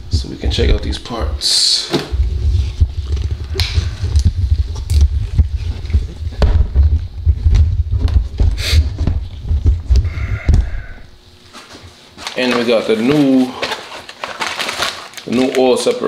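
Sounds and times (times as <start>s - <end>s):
camera handling rumble: 2.1s - 10.8s.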